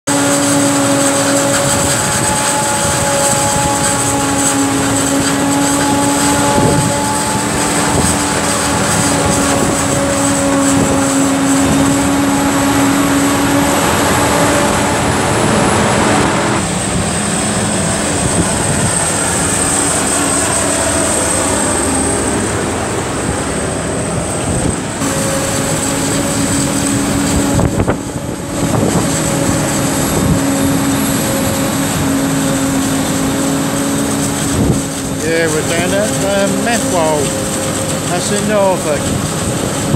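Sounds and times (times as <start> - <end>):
forage harvester engine and chopping: 0.0 - 15.8, 24.4 - 39.9.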